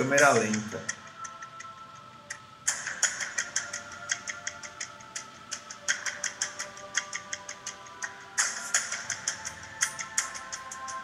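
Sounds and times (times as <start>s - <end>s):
clock-like ticking: 0.0s - 11.0s.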